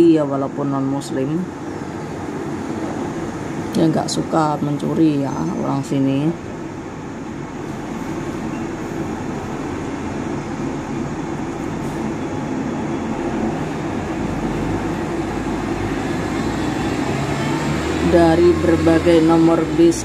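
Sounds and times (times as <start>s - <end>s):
bus engine rumble: 0.0s - 20.0s
passing cars: 0.0s - 20.0s.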